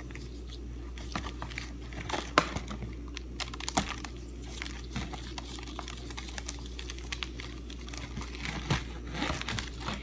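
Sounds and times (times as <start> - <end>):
pastry strands crackling and rustling: 0.0 - 10.0.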